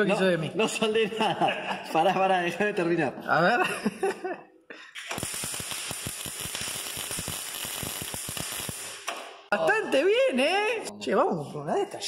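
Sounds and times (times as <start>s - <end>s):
welder arc crackling: 5.0s - 9.5s.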